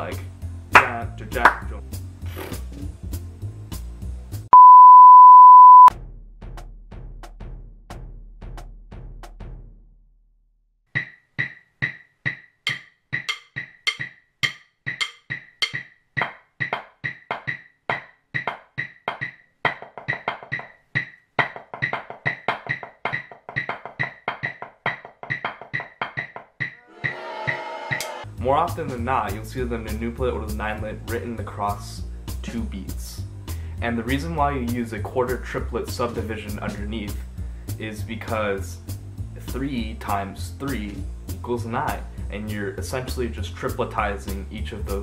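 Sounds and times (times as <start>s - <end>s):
loud steady beep: 4.6s - 5.9s
drumsticks on a drum: 11.0s - 26.8s.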